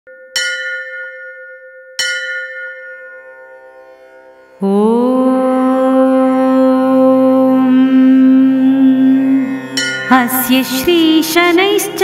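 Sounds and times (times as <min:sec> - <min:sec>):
bell ringing: 0:00.1 - 0:04.3, 0:09.8 - 0:10.7.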